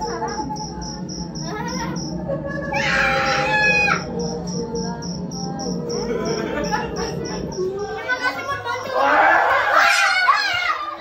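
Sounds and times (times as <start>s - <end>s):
crickets chirping: 0.0s - 9.5s
low steady drone: 0.0s - 10.4s
loud high-pitched cry: 2.6s - 4.1s.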